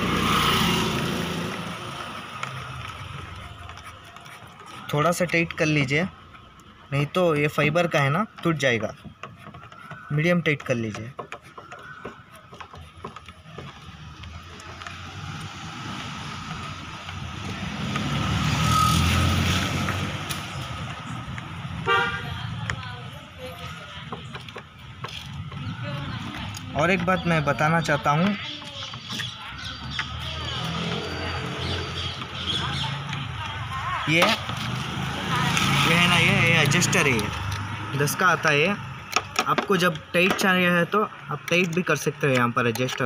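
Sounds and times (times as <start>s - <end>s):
vehicle engine rumble passing: 0.0s - 3.8s, 13.7s - 39.2s.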